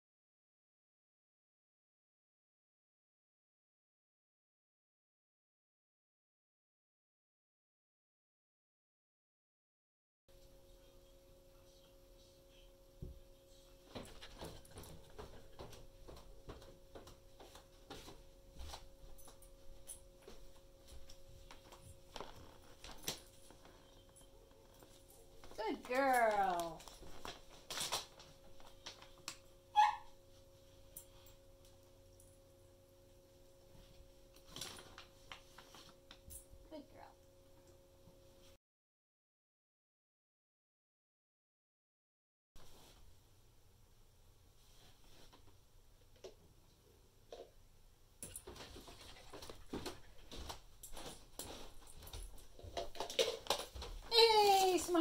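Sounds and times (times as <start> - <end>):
dog whining: 29.7 - 30.2
paw patter on carpet: 48.3 - 55.0.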